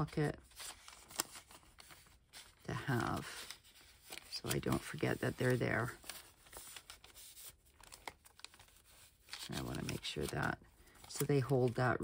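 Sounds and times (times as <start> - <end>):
paper rustling: 0.0 - 12.0.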